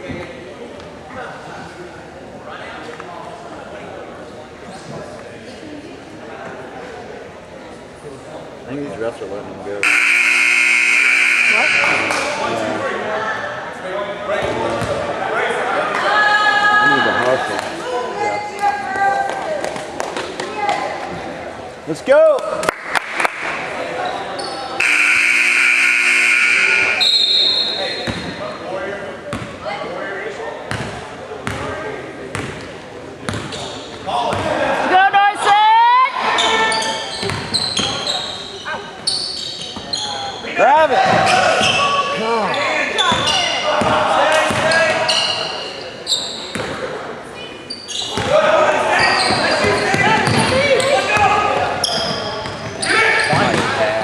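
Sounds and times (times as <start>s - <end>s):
spectators' voices: 0.0s - 54.0s
loud steady tone: 9.8s - 12.4s, 24.8s - 27.8s.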